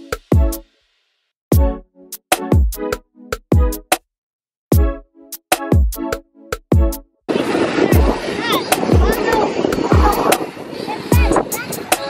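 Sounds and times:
electronic music with kick drum: 0.0 - 0.8, 1.5 - 4.0, 4.7 - 7.2, 7.9 - 10.4.

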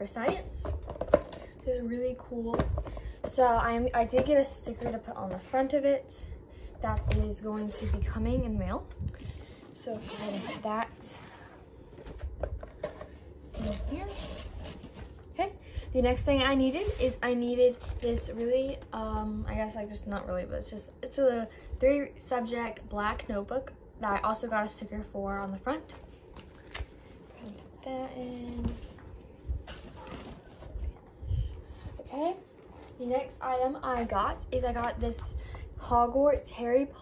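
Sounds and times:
soft rustling and handling: 0.0 - 19.5, 25.4 - 35.6.

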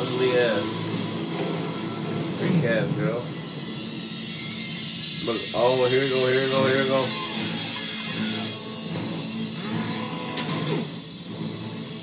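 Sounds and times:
mechanical whirring from television: 0.0 - 12.0.

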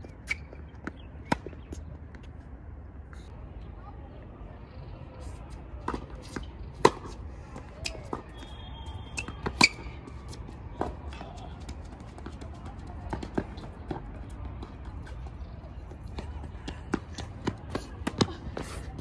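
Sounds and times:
racket hitting tennis ball: 5.8 - 7.2, 9.2 - 11.4
tennis ball bouncing: 5.8 - 8.5, 9.1 - 14.6.

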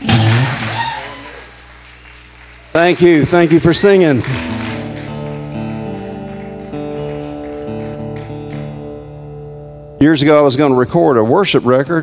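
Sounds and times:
acoustic guitar chords: 0.0 - 0.8, 4.1 - 11.0.

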